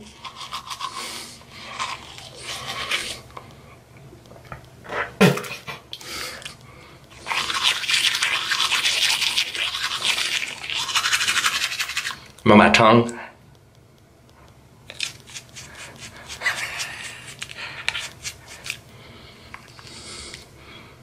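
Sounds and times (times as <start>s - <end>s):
toothbrush scrubbing teeth: 0.0s - 3.3s, 6.4s - 12.3s, 14.9s - 18.8s.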